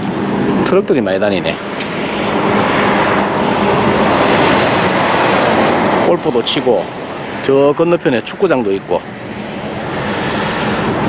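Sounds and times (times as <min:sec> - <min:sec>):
truck passing on road: 0:00.0 - 0:11.0.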